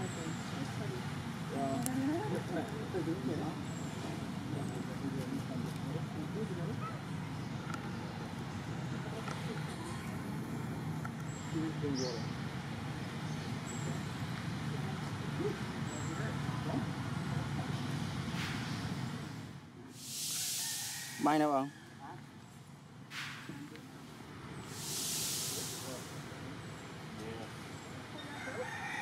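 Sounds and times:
distant road traffic rumble: 0.0 - 29.0
loud hiss: 19.9 - 21.4, 24.6 - 26.7.

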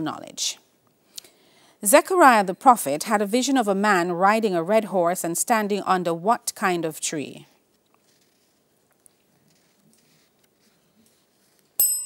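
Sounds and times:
electronic bell chime: 11.8 - 12.0.

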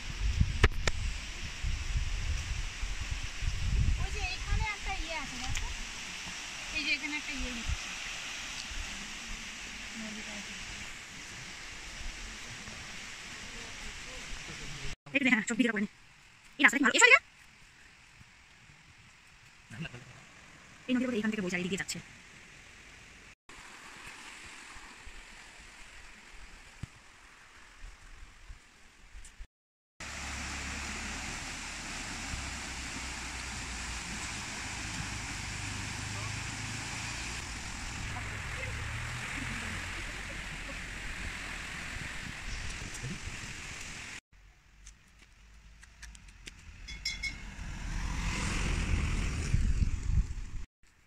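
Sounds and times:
wind buffeting microphone: 0.0 - 5.8, 37.4 - 44.2, 47.7 - 50.7
stream rushing: 0.9 - 15.0, 22.1 - 29.0, 30.0 - 44.2.

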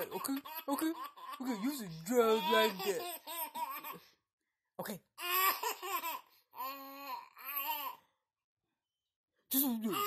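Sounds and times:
baby laughing: 0.0 - 4.1, 5.2 - 8.0.

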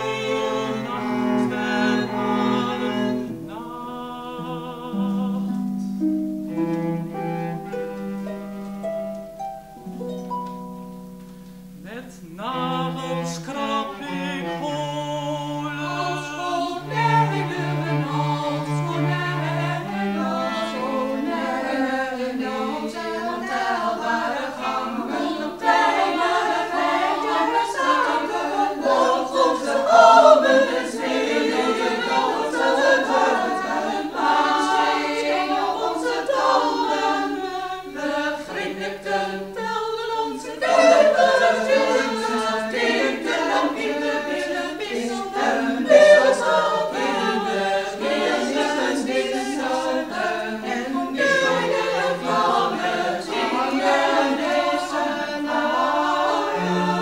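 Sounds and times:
women's choir singing: 0.0 - 9.0, 11.8 - 57.0.

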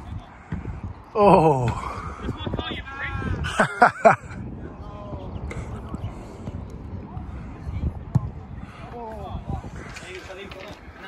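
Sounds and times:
football kicked thump: 8.1 - 8.3.

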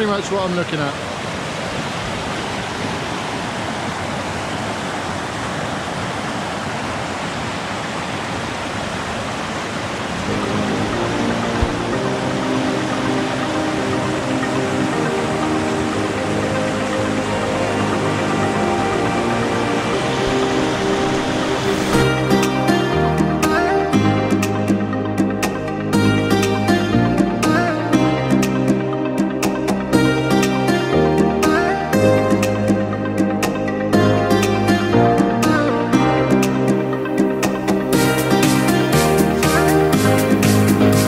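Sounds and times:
river rapids rushing: 0.0 - 24.2
soft background music: 10.2 - 41.0.

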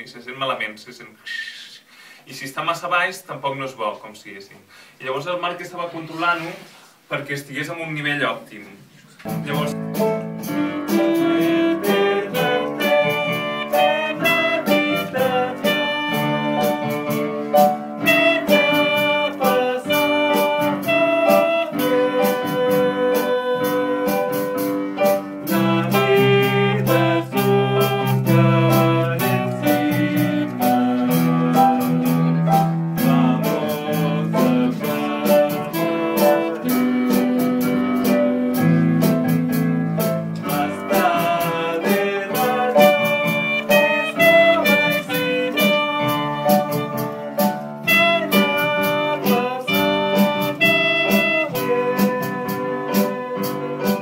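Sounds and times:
band playing a melody and chords: 9.2 - 54.0
drum kit beat: 9.3 - 54.0.

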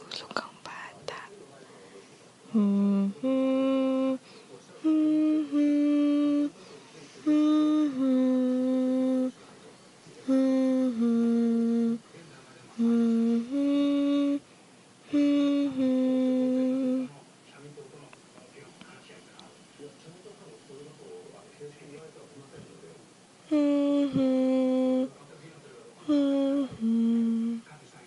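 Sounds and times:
person humming a lullaby: 2.5 - 6.6, 7.2 - 9.4, 10.2 - 12.1, 12.8 - 17.2, 23.4 - 25.2, 26.0 - 27.7.

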